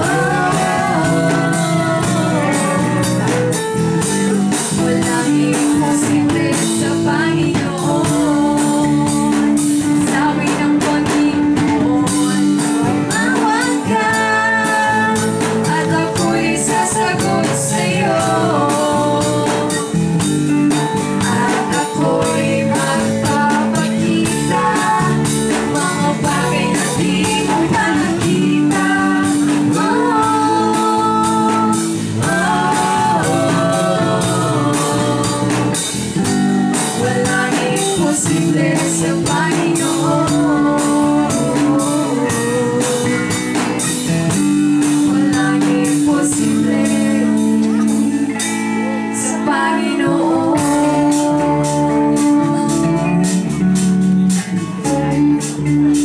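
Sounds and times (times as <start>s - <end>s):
person singing: 0.0s - 20.1s, 21.1s - 36.1s, 36.7s - 54.0s
drum kit with cymbal hits: 0.0s - 56.0s
electric guitar: 0.0s - 56.0s
live band playing slow song: 0.0s - 56.0s.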